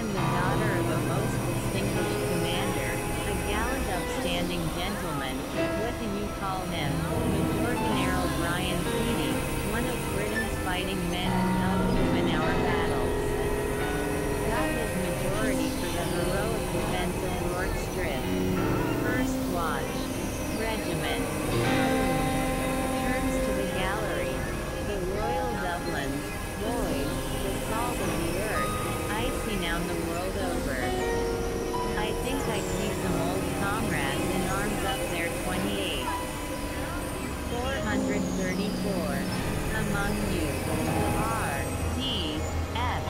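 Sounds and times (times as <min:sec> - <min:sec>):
fragments of spoken voice: 0:00.0 - 0:31.2, 0:31.9 - 0:36.2, 0:36.9 - 0:43.0
electronic drone music: 0:00.0 - 0:43.0
noisy hiss: 0:00.0 - 0:43.0
steady low tone: 0:00.0 - 0:43.0.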